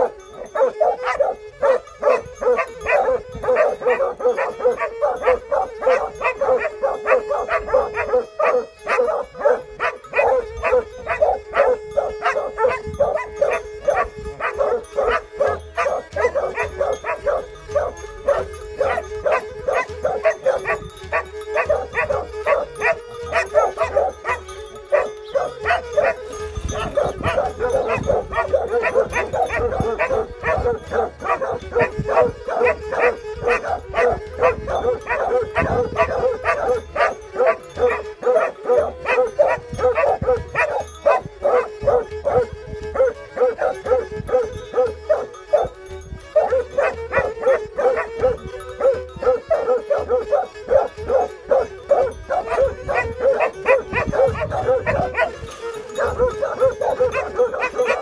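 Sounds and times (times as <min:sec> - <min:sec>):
dogs barking fast: 0:00.0 - 0:58.0.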